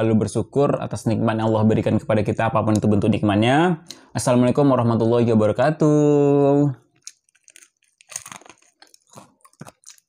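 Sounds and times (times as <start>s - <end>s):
person chewing crispy food: 6.8s - 10.0s.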